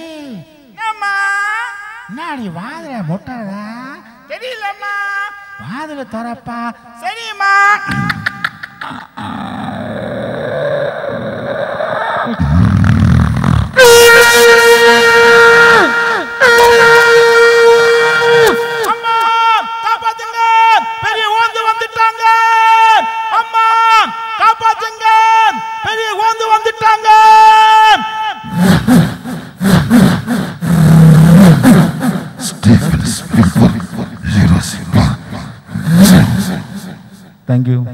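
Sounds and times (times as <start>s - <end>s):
vocal air-horn blasts: 12.4s - 19.4s, 28.4s - 33.3s.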